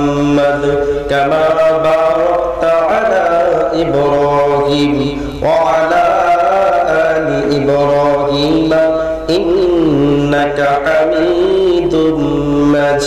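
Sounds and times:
man chanting into a microphone: 0.0s - 13.0s.

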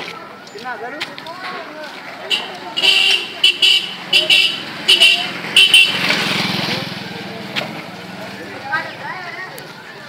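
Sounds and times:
motorcycle engine running: 3.5s - 8.6s.

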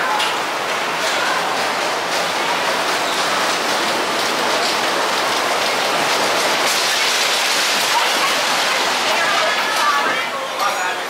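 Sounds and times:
roller coaster train rolling: 0.0s - 11.0s.

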